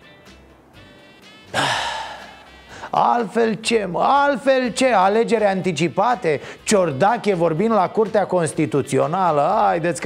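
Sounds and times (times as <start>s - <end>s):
man sighing: 1.5s - 3.0s.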